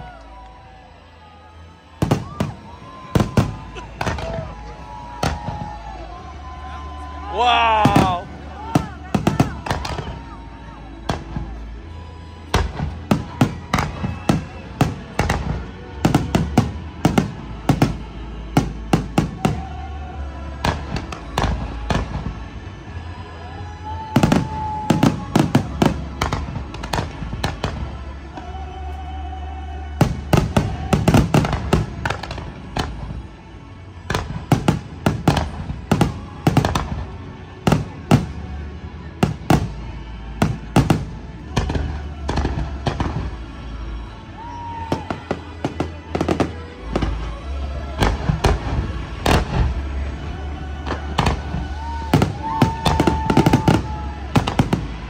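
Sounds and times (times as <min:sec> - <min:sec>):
fireworks bangs and pops: 0:02.0 - 0:05.8, 0:07.8 - 0:10.2, 0:12.5 - 0:19.8, 0:20.6 - 0:22.6, 0:24.1 - 0:28.5, 0:30.0 - 0:33.2, 0:34.0 - 0:38.5, 0:39.1 - 0:43.5, 0:44.7 - 0:50.2, 0:50.8 - 0:55.0.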